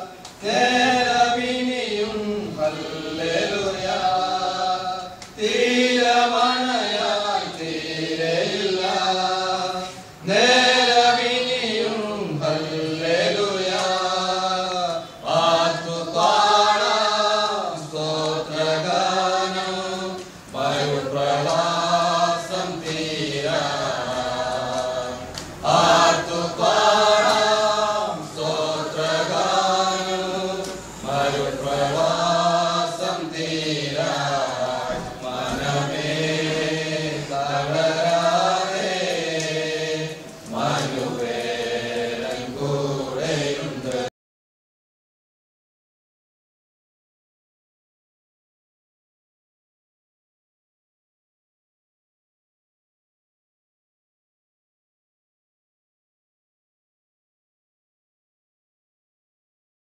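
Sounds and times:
unaccompanied hymn singing: 0.0 - 44.1.

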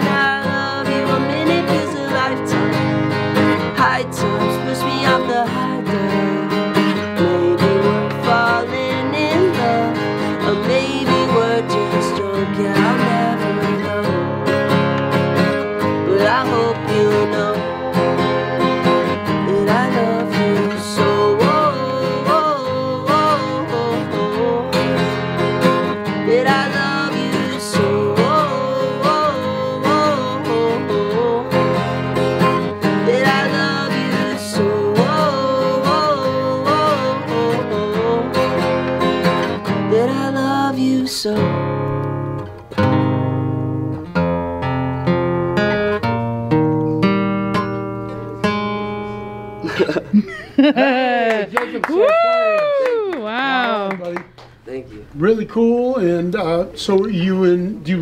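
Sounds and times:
man singing: 0.0 - 14.7, 15.8 - 42.0, 55.2 - 58.0
acoustic guitar strummed: 0.0 - 50.1.

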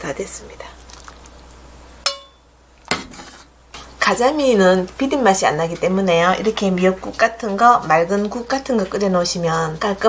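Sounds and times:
metal ladle clinking on cookware: 2.0 - 2.4.

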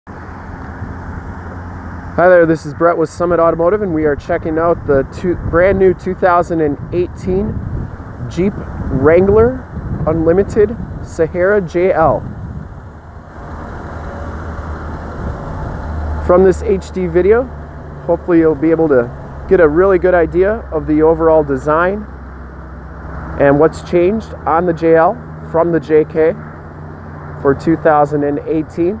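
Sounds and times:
vehicle traffic rumble: 0.1 - 29.0.

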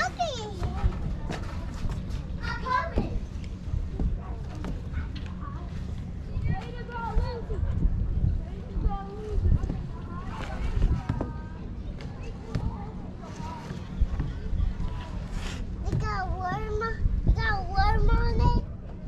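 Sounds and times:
people talking: 0.0 - 18.7
steady low rumble: 0.0 - 19.0.

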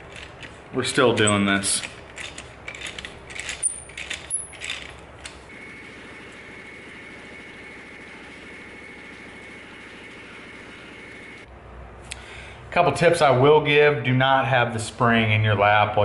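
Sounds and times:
steady low hum: 0.0 - 13.5.

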